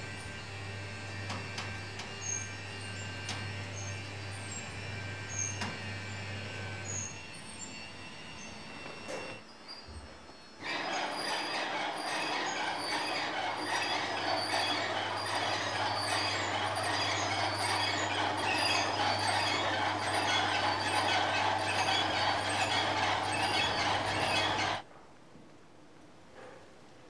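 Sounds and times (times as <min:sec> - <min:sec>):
metal gears clattering and squealing: 0:02.2 - 0:05.7, 0:06.8 - 0:24.8
low motor hum: 0:10.6 - 0:24.8.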